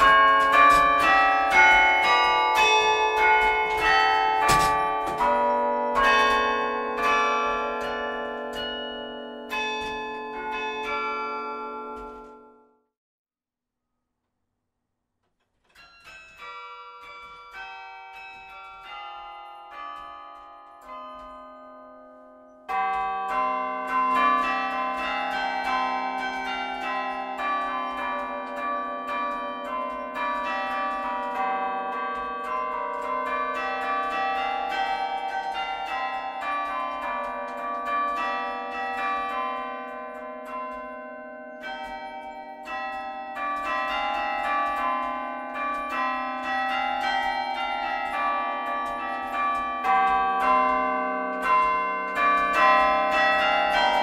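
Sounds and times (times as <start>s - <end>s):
carillon bells playing melody: 0.0s - 12.6s, 15.7s - 54.0s.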